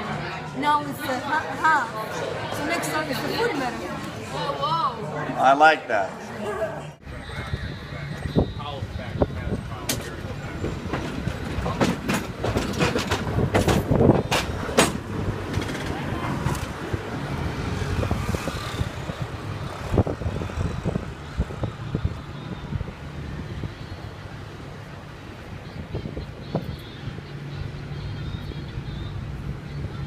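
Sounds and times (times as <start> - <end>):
rumbling street noise: 0.0 - 30.0
cable car clattering on rails: 9.8 - 16.9.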